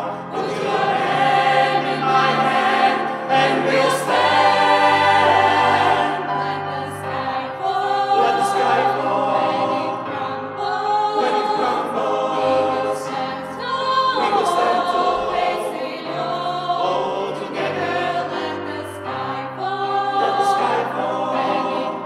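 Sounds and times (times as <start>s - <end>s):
choir singing in harmony: 0.0s - 22.0s
digital piano accompaniment: 0.0s - 22.0s.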